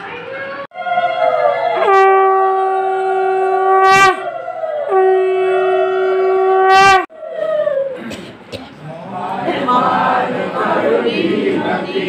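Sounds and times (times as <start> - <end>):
conch shell blasts: 1.8 - 2.7, 3.6 - 4.3, 4.9 - 7.1.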